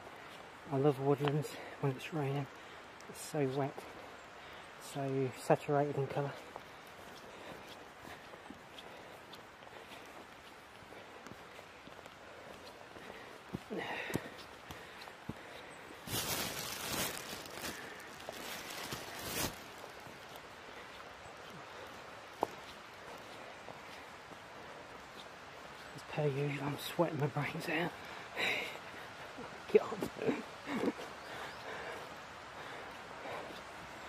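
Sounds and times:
footsteps on wet ground: 0.0s - 34.0s.

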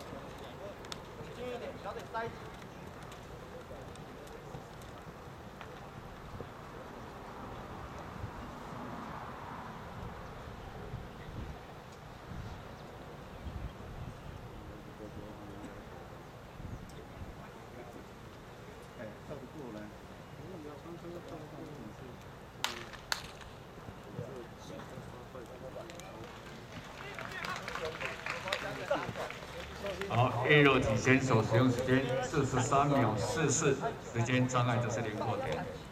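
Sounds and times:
people talking in background: 0.0s - 9.1s, 10.4s - 35.9s
open-air ambience: 0.0s - 35.9s
wind rumbling on microphone: 6.0s - 14.8s.

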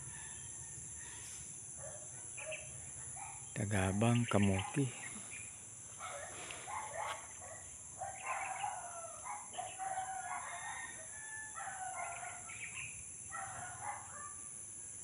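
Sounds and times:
roosters crowing: 0.0s - 1.3s, 6.0s - 14.4s
high buzz of insects: 0.0s - 15.0s.

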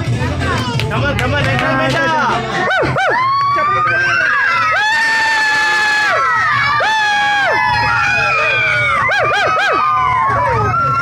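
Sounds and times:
children shouting and cheering: 2.6s - 11.0s
children whooping: 2.7s - 11.0s.

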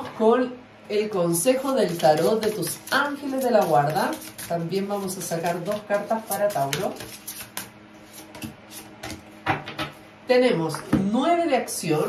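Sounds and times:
cards being shuffled: 1.9s - 9.2s.

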